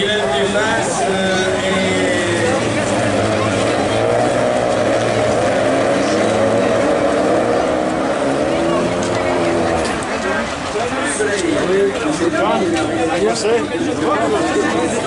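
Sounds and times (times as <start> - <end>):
race car engines at high revs: 0.0 - 15.0.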